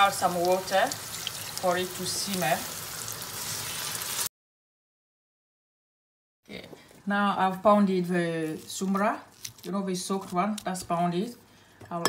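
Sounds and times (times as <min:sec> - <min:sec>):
onions and fish sizzling in oil: 0:00.0 - 0:04.3.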